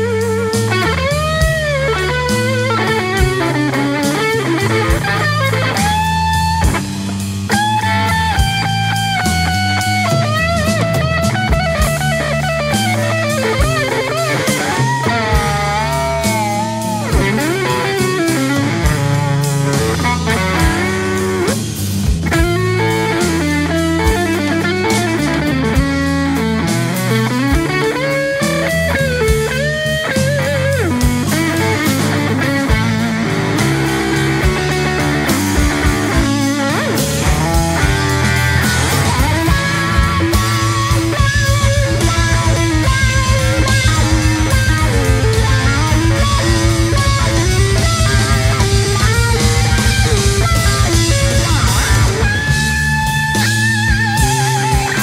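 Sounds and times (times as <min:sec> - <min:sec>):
bass guitar: 0:00.0 - 0:55.0
drums: 0:00.0 - 0:55.0
electric guitar solo: 0:00.0 - 0:55.0.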